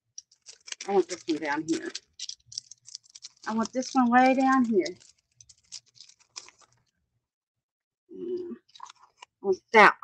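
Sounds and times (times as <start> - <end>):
plastic sleeve crinkling: 0.0 - 7.0, 8.7 - 9.4
person speaking: 0.7 - 6.7.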